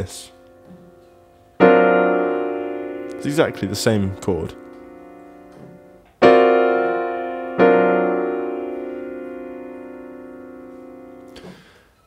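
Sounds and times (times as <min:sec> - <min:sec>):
piano chord ringing: 0:00.0 - 0:11.8.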